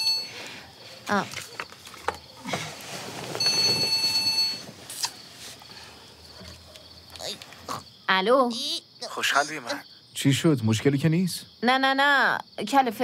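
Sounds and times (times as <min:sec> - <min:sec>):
mobile phone ringing: 0:00.0 - 0:00.4, 0:03.4 - 0:04.7.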